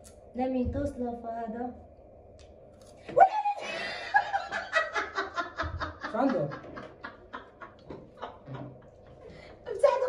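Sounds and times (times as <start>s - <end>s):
woman laughing hard: 3.6s - 8.8s.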